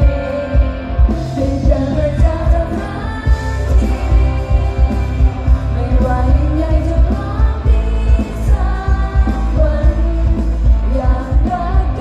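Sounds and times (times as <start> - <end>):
live pop song with band: 0.0 - 12.0.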